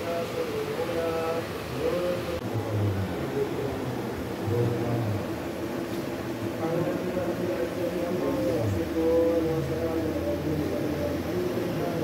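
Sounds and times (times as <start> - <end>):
men chanting prayers: 0.0 - 5.5, 6.5 - 12.0.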